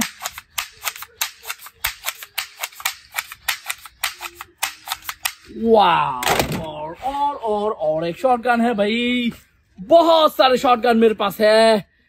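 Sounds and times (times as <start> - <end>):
toy shotgun firing cracks: 0.0 - 5.5.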